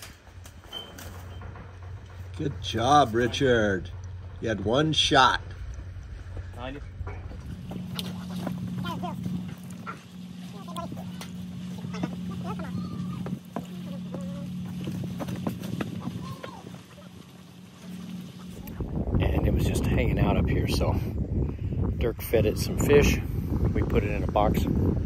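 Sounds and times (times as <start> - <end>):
steady low hum: 0.0 - 25.0
low voices talking: 7.9 - 14.9.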